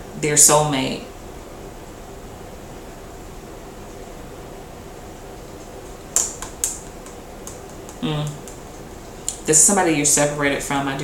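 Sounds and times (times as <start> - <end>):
low room hum: 0.0 - 11.0
sharp card snaps: 6.2 - 8.6.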